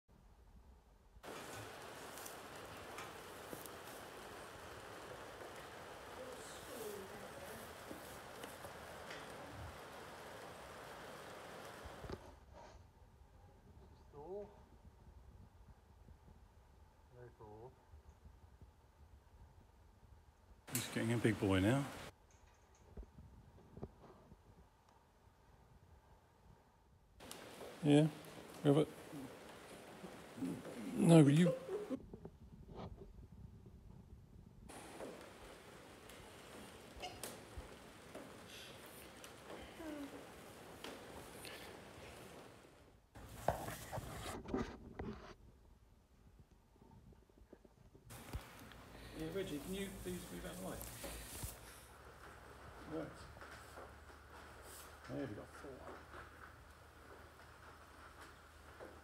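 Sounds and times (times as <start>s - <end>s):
steady hiss: 1.2s - 12.7s, 20.7s - 22.2s, 27.2s - 32.0s, 34.7s - 44.2s, 48.1s - 59.0s
faint handling rustling: 1.2s - 12.8s, 27.2s - 32.0s, 34.7s - 44.4s, 48.1s - 59.0s.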